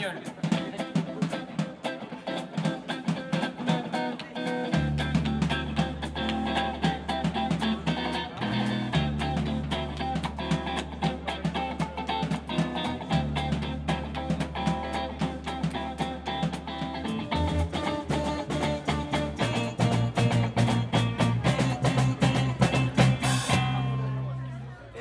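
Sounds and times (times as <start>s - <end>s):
steady drum rhythm: 0.0s - 24.2s
electric guitar: 0.0s - 24.7s
electric bass line: 4.7s - 24.5s.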